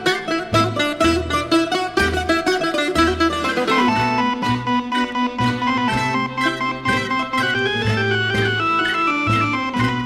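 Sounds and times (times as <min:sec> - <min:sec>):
guitar: 0:00.0 - 0:10.0
plucked string melody: 0:00.0 - 0:10.0.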